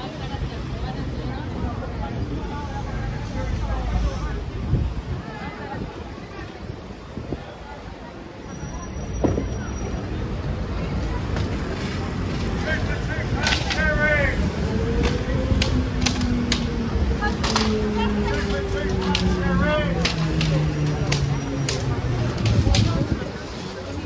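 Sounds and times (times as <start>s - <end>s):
people talking: 0.0s - 16.0s, 16.9s - 24.0s
traffic rumble: 0.0s - 24.0s.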